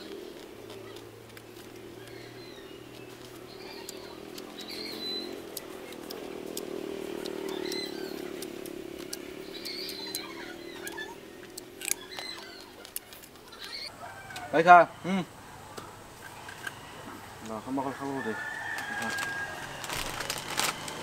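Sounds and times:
birds chirping: 0.0 - 21.0
distant engine hum: 0.0 - 21.0.

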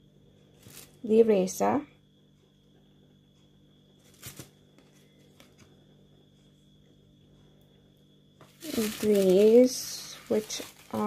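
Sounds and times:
paper and card rustling: 4.0 - 5.7, 8.5 - 11.0.

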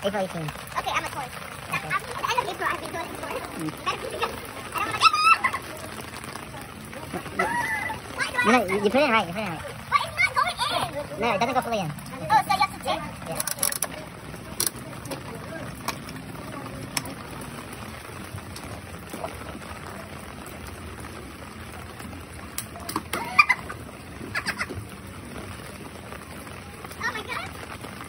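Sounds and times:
rain on an umbrella: 0.0 - 28.0.

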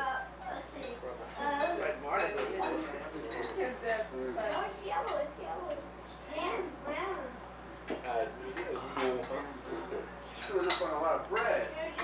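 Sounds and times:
people conversing: 0.0 - 12.0
plates and cutlery clinking: 0.7 - 5.4, 7.9 - 12.0.

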